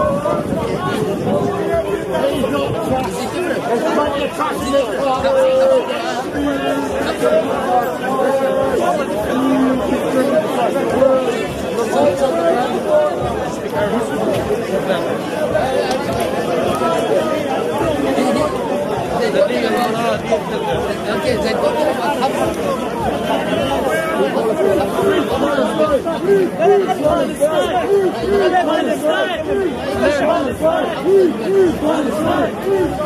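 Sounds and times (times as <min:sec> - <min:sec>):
people talking over one another: 0:00.0 - 0:33.0.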